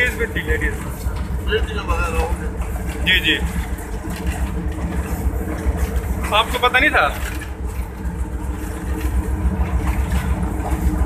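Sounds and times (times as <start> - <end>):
locomotive engine drone: 0.0 - 11.0
running gear rumbling on track: 0.0 - 11.0.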